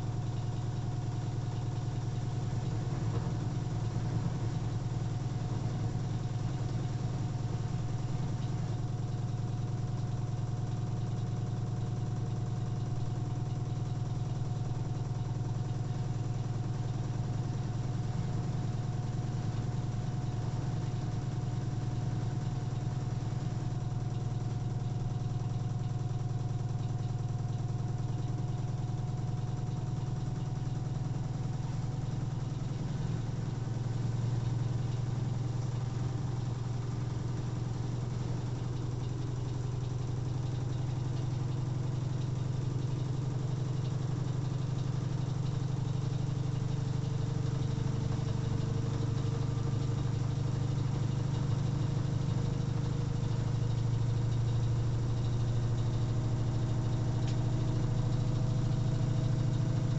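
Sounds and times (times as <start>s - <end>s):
faint steady whine: 0.0s - 59.9s.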